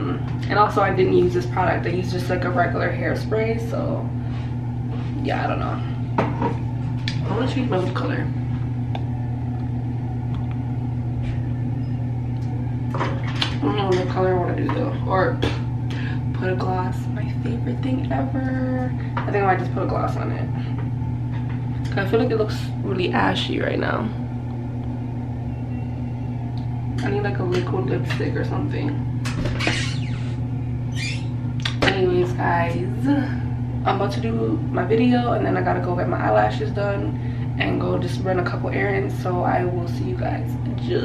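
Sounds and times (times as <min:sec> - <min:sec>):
low background hum: 0:00.0 - 0:41.0.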